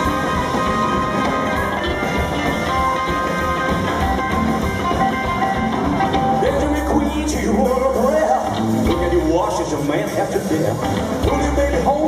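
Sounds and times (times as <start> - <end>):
electric guitar: 0.0 - 12.0
rockabilly band playing: 0.0 - 12.0.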